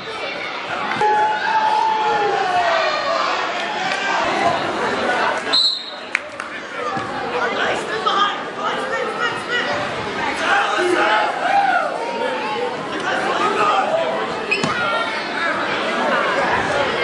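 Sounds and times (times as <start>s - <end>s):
spectators talking and calling out: 0.0s - 17.0s.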